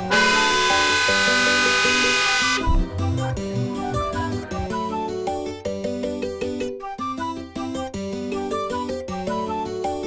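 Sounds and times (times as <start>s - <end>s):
car horn blast: 0.0s - 2.9s
background music: 0.0s - 10.0s.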